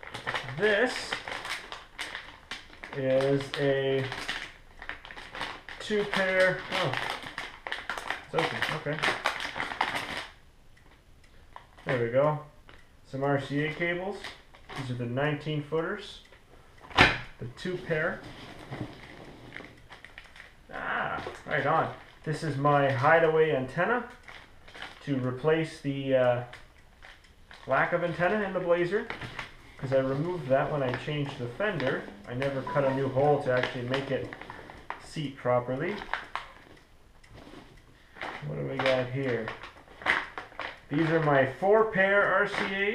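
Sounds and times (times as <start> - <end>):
plastic bag rustling: 0.0 - 10.4, 17.8 - 20.6, 27.0 - 35.0, 37.4 - 41.5.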